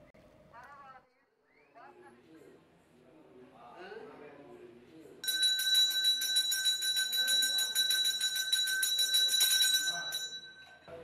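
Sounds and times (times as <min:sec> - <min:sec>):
hand bell ringing rapidly: 0:05.2 - 0:11.0.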